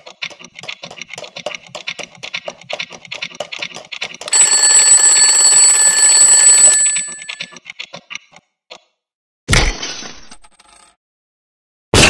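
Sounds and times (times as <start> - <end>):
alarm clock bells ringing: 4.3 - 7.5.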